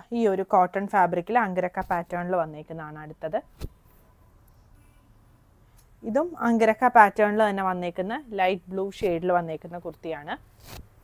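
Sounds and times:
woman speaking: 0.0s - 3.5s, 6.0s - 10.4s
fabric swishing: 3.5s - 4.0s, 10.6s - 11.0s.

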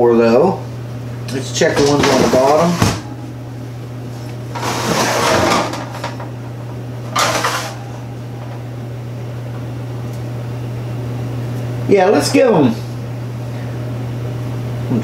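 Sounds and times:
steady low hum: 0.0s - 15.0s
oven rack scraping on runners: 1.6s - 3.2s, 4.4s - 8.6s.

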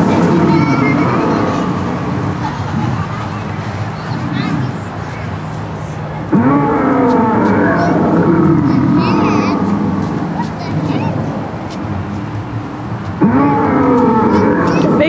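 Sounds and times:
dinosaur bellow from loudspeaker: 0.0s - 2.1s, 6.3s - 10.3s, 13.2s - 15.0s.

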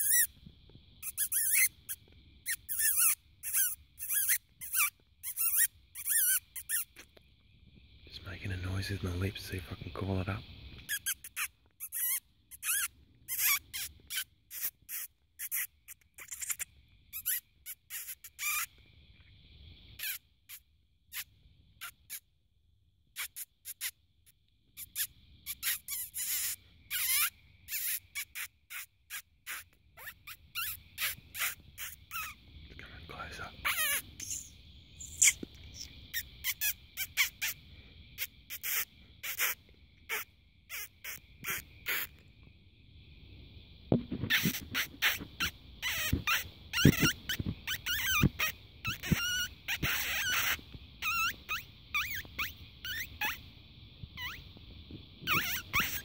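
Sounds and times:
high-pitched predator call squeaks: 0.0s - 0.4s, 1.0s - 7.2s, 10.8s - 18.8s, 20.0s - 22.2s, 23.2s - 24.0s, 24.8s - 32.4s, 33.6s - 37.6s, 38.2s - 42.2s, 44.3s - 53.4s, 54.2s - 54.5s, 55.2s - 56.0s.

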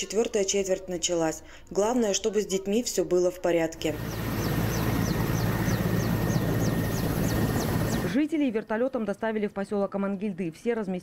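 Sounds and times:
helicopter engines running: 3.7s - 8.2s
high falling chirp: 3.9s - 8.1s.

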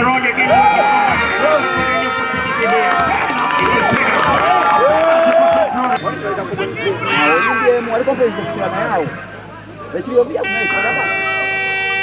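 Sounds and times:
crowd shouting and cheering: 0.0s - 10.0s
long drawn-out shouts: 0.4s - 5.8s.

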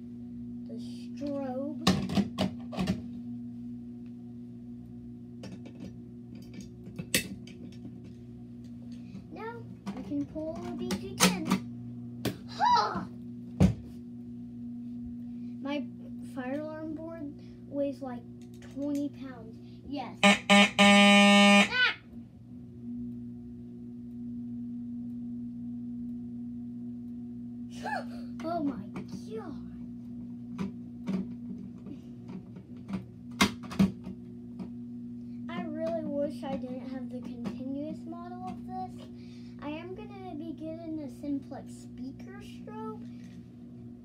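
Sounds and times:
steady low hum: 0.0s - 44.0s
fire alarm horn blast: 20.2s - 22.0s.

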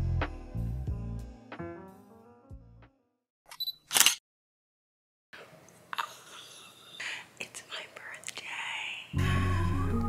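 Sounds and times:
woman whispering: 6.0s - 9.2s.

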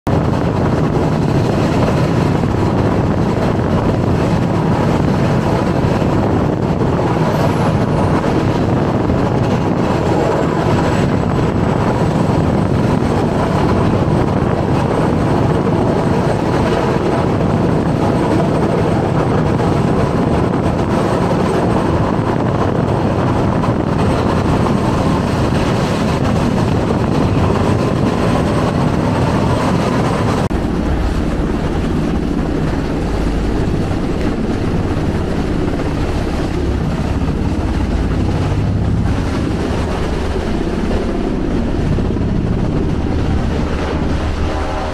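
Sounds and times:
wind and rushing sea: 0.0s - 44.9s
wind buffeting microphone: 0.1s - 44.9s.

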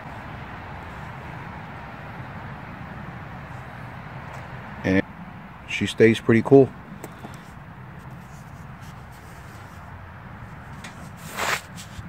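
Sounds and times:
engine idling: 6.8s - 8.2s.

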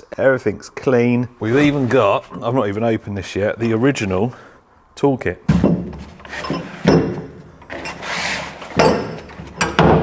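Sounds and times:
cloth rubbing and sliding: 1.4s - 2.3s, 7.8s - 8.8s
cloth scraping on metal floor: 5.9s - 9.5s.

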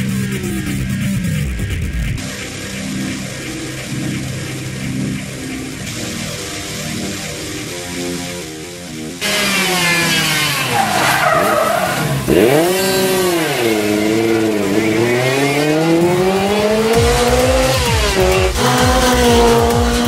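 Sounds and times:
rally car engine revving: 9.2s - 20.0s
tyres squealing: 10.2s - 15.4s.

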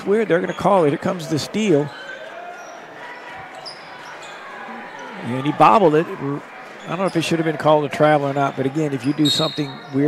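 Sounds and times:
crowd murmuring: 0.0s - 10.0s.

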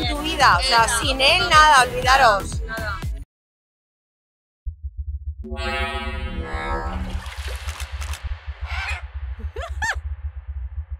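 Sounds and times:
low rumbling pulse: 4.7s - 10.9s
held synth tone: 5.5s - 7.2s.

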